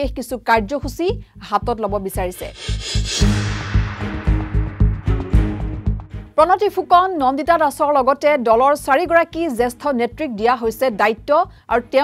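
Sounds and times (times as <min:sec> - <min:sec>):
woman speaking: 0:00.0 - 0:02.5, 0:06.4 - 0:12.0
news bulletin music: 0:01.5 - 0:08.0
whoosh of noise: 0:02.2 - 0:06.3.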